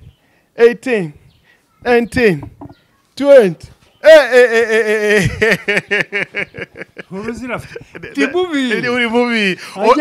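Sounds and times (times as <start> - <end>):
man calling out short sounds: 3.2 - 5.1.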